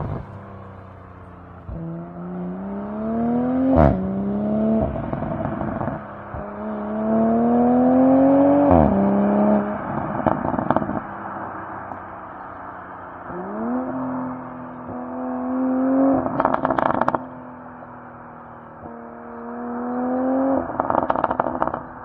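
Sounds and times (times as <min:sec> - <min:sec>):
exhaust crack: 0:00.0 - 0:15.1, 0:16.1 - 0:20.0, 0:20.6 - 0:22.0
car exhaust revving hard: 0:01.1 - 0:11.7, 0:13.3 - 0:17.3.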